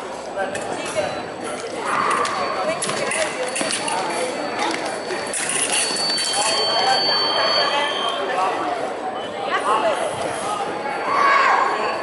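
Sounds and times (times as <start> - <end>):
thin high tone: 1.9 - 8.6.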